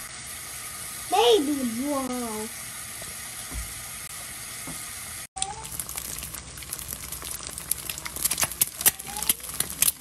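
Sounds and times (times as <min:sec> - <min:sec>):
eggs sizzling and popping in pan: 0:00.0 - 0:10.0.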